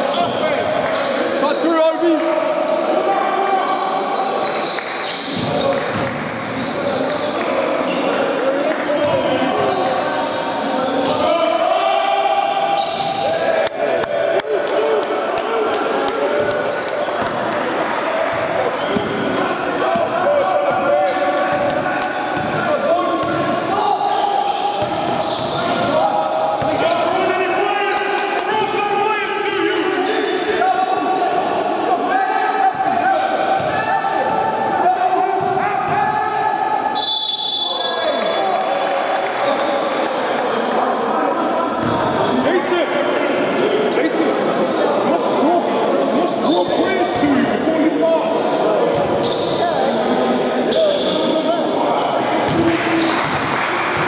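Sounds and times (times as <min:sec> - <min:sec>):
players calling out: 0:00.0 - 0:40.2
referee's whistle: 0:35.2 - 0:38.4
ball bouncing on wooden court: 0:52.5 - 0:54.0.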